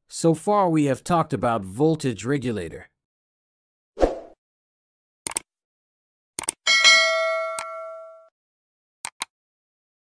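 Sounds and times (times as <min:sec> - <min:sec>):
bright bell chime: 0:06.7 - 0:08.3
mouse clicks: 0:09.0 - 0:09.3.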